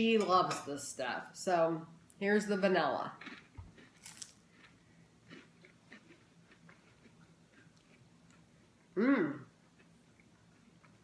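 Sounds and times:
biting into a cracker: 3.2 - 8.0
crunchy chewing: 3.2 - 8.4.

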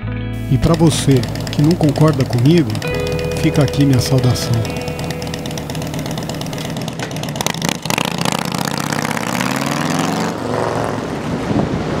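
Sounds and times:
motorcycle accelerating: 0.4 - 12.0.

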